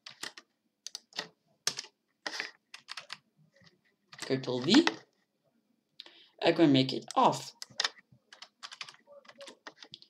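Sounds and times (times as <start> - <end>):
keyboard typing: 0.0 - 5.0, 7.0 - 10.0.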